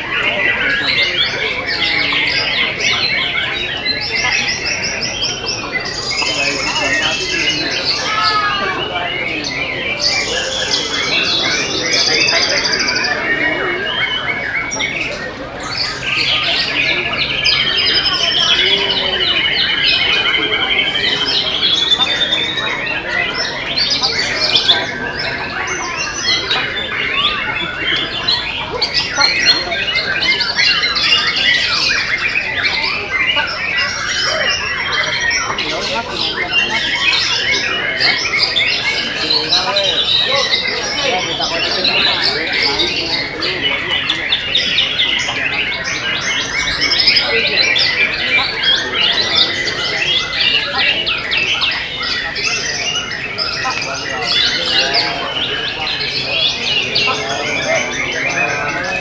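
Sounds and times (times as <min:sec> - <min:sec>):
birds singing whistles and chirps: 0:00.0 - 0:59.0.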